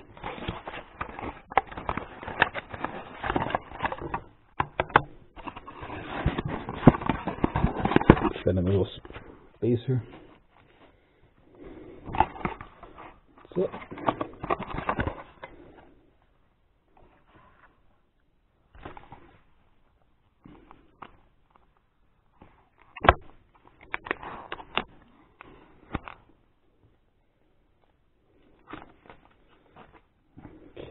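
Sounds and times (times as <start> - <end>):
cardboard packaging rustling: 0.0 - 9.3, 12.1 - 15.6.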